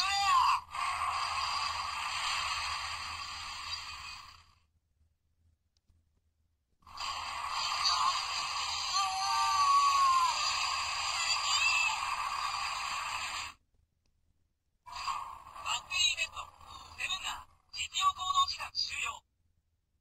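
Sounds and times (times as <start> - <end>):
tinny toy speaker voice and effects: 0.0 - 1.2, 7.0 - 13.6, 14.9 - 19.2
choppy voice-like sounds: 0.0 - 4.2, 6.9 - 13.6, 14.9 - 18.2.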